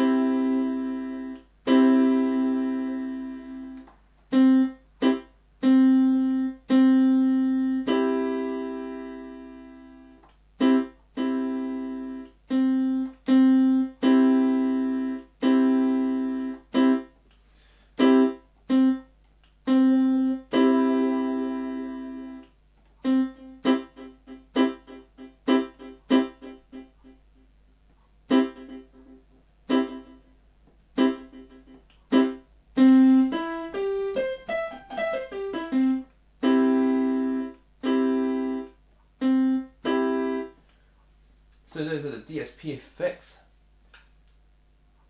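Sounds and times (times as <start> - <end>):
electronic keyboard chords: 0.0 - 17.4, 18.0 - 27.5, 28.2 - 40.8.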